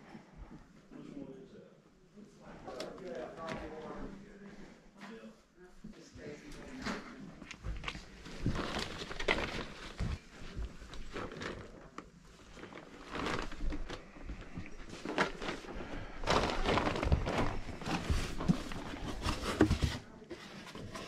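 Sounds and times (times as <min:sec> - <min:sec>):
plastic bag rustling: 0:07.7 - 0:21.0.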